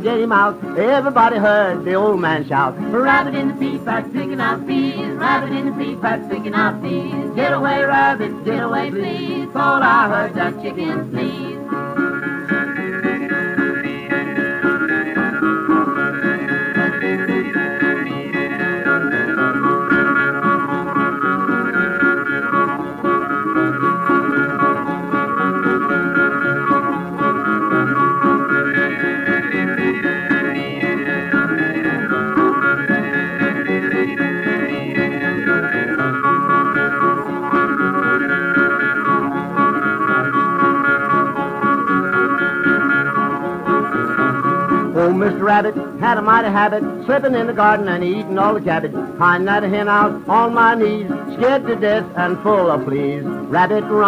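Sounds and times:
string band lead melody: 0.0 - 54.0
strummed guitars: 0.0 - 54.0.

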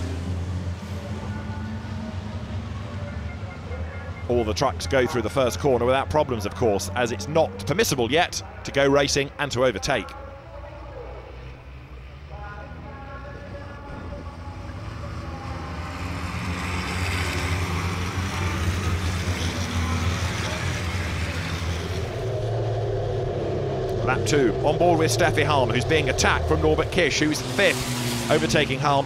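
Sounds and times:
diesel truck engines passing: 0.0 - 29.0.

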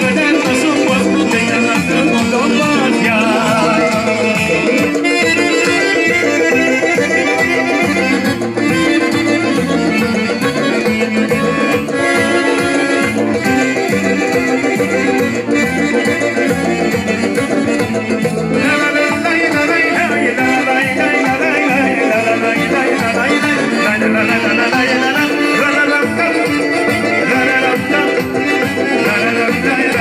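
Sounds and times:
drums: 0.0 - 30.0
keyboard: 0.0 - 30.0
live band playing folk dance music: 0.0 - 30.0.

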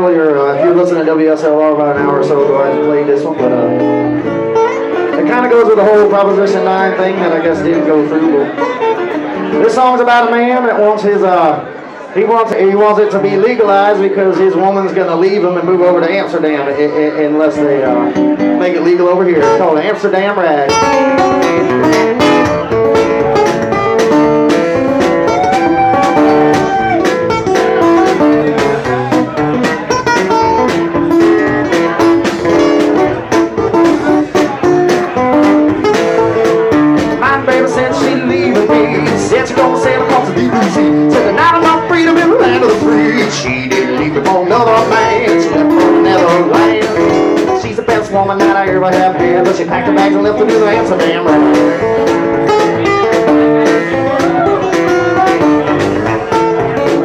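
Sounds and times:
blues guitar playing: 0.0 - 57.0
knocking beat: 20.8 - 57.0.

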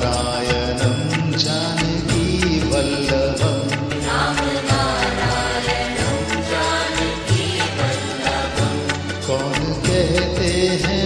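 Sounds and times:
devotional song instrumental melody: 0.0 - 11.0
steady percussion beat: 0.0 - 11.0.

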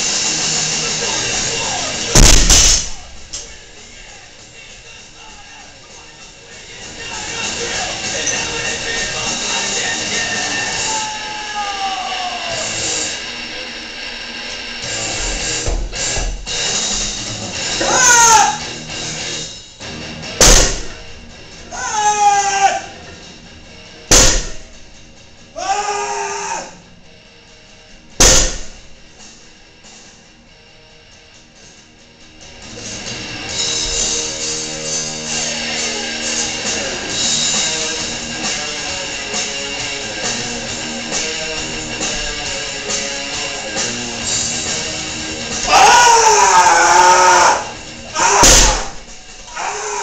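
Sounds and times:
man yelling with strain: 10.7 - 12.7, 17.8 - 18.6, 21.7 - 23.0, 25.6 - 26.7, 45.7 - 48.6
barbell thudding on floor: 20.4 - 21.0, 24.1 - 24.7, 28.2 - 28.9, 48.4 - 49.1.

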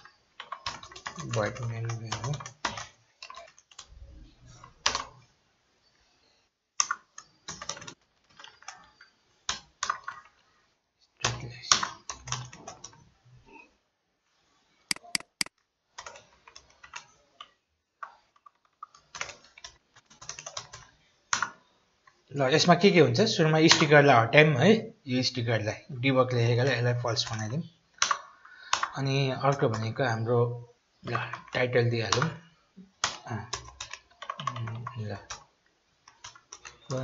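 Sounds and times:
typing on computer keyboard: 0.0 - 3.9, 4.6 - 5.2, 6.8 - 10.4, 11.2 - 13.0, 18.5 - 21.6, 28.0 - 30.0, 31.0 - 32.4, 33.0 - 37.0.

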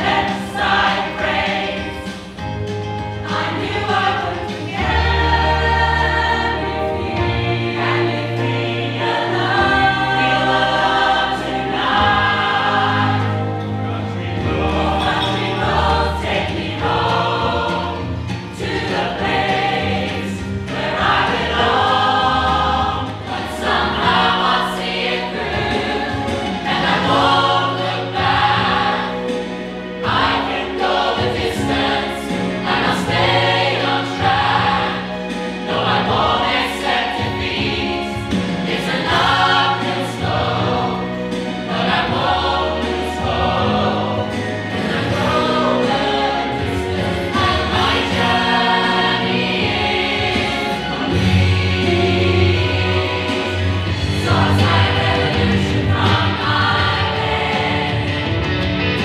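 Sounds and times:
mixed choir singing in harmony: 0.0 - 59.0.

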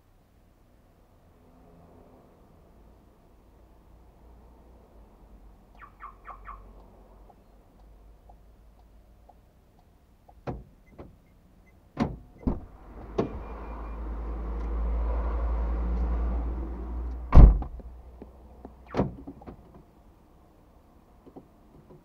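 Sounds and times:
sharp clicks and knocks: 9.3 - 11.2, 17.1 - 19.9, 21.2 - 22.0
heavy car door thump: 12.0 - 13.3, 17.3 - 17.8.

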